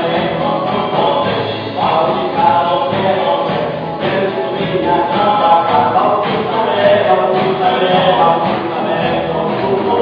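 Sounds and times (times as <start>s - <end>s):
acoustic guitar: 0.0s - 10.0s
voices singing together: 0.0s - 10.0s.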